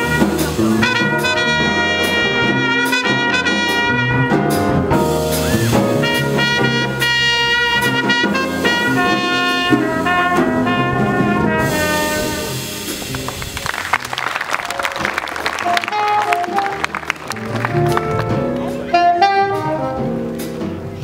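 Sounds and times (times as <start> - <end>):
trumpet solo: 0.0 - 13.6, 14.6 - 20.2
drum kit and cymbals: 0.0 - 13.9, 17.8 - 21.0
electric bass: 0.0 - 21.0
keyboard: 0.0 - 21.0.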